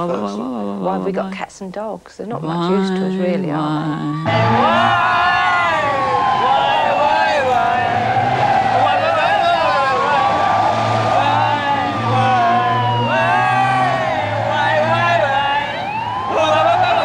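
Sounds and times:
chorus of voices calling out: 4.1s - 17.0s.

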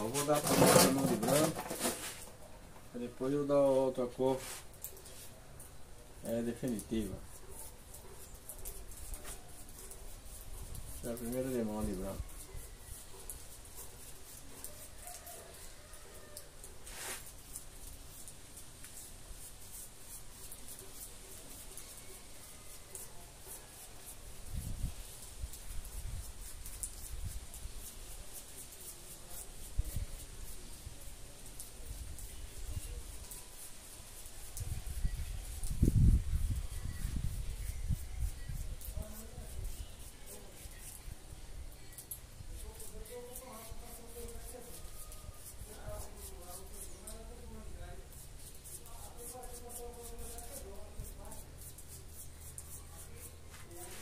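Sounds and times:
paintbrush scratching on cement: 0.0s - 2.4s, 3.0s - 54.0s.

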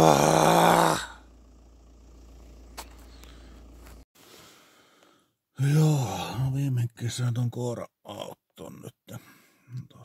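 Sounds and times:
low outdoor rumble: 0.0s - 4.0s.

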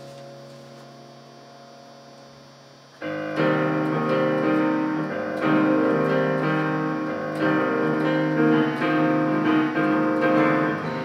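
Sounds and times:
electronic keyboard chord: 0.0s - 11.0s
low electrical hum: 0.0s - 11.0s.

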